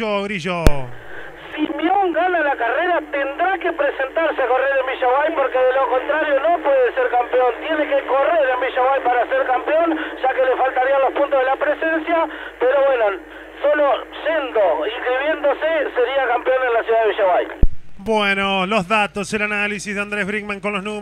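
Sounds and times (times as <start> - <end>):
person talking: 0.0 - 17.4
commentator talking over telephone line: 0.0 - 21.0.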